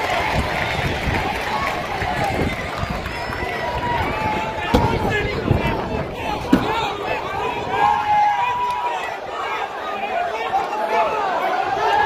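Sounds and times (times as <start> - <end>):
stadium crowd shouting: 0.0 - 12.0.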